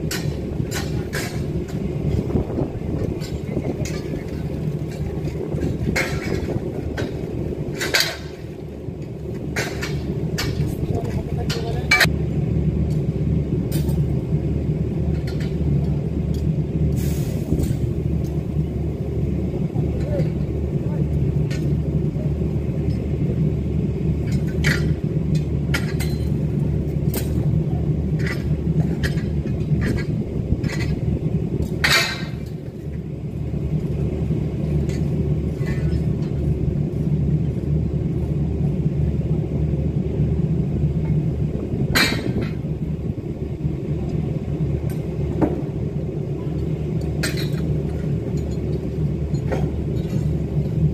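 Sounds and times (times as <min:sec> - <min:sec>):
scaffold tubes clanking: 0:00.0 - 0:12.1
machinery rumble: 0:00.0 - 0:50.9.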